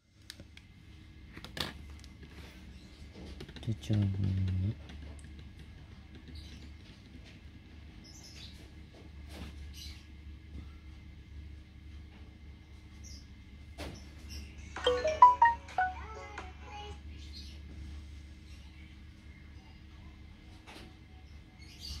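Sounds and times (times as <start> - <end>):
run of electronic notes: 14.8 - 16.2.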